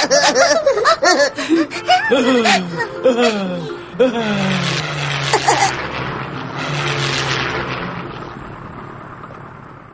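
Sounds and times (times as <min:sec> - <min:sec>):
cartoon airplane engine drone: 0:00.0 - 0:09.8
rushing noise: 0:00.0 - 0:09.9.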